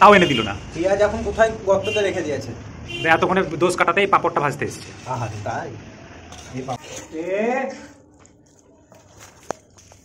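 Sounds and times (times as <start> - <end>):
metal spoon stirring in pot: 4.8 - 10.0.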